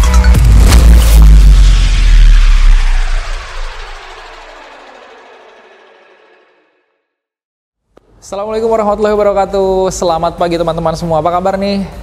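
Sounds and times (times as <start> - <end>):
deep boom with reverberant tail: 0.4 - 6.8.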